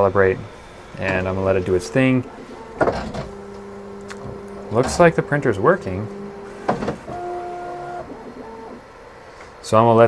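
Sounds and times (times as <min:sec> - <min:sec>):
stepper motors whining: 0:00.2 - 0:09.1.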